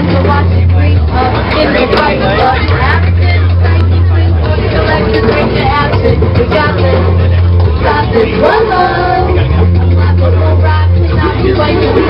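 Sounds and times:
live amplified music: 0.0s - 12.0s
voices: 0.0s - 12.0s.

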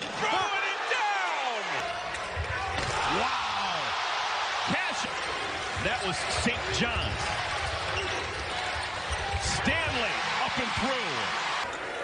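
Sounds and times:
arena crowd noise: 0.0s - 12.0s
sneakers squeaking on court: 5.2s - 9.7s
basketball bouncing on court: 5.6s - 10.9s.

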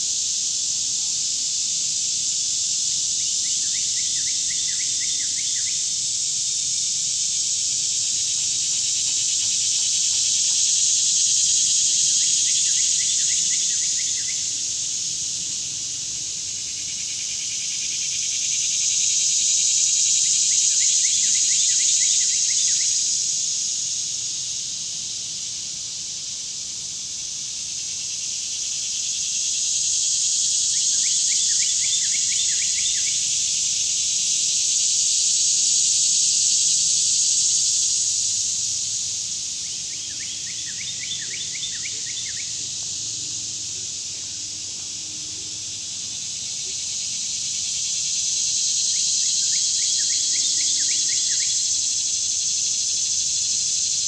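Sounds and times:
insects droning: 0.0s - 54.0s.

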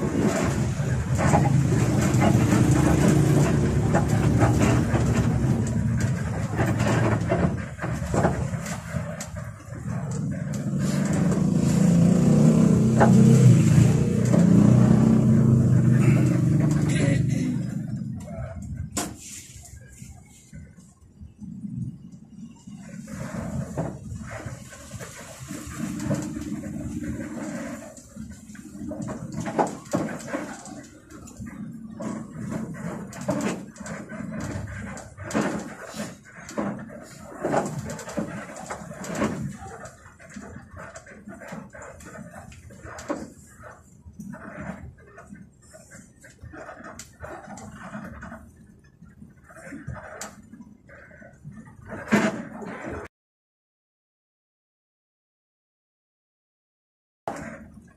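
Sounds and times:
rattles and knocks from bus body: 0.0s - 18.2s, 23.3s - 45.0s
bus engine running: 0.0s - 21.0s.

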